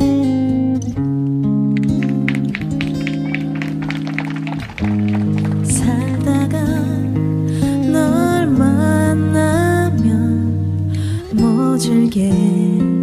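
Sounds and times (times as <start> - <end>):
acoustic guitar plucked: 0.0 - 13.0.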